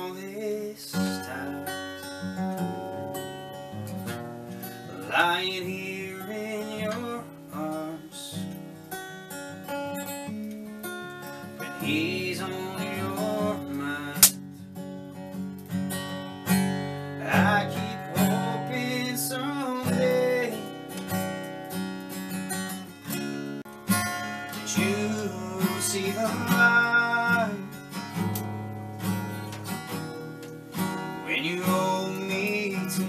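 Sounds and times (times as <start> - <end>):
acoustic guitar strummed and picked: 0.0 - 33.0.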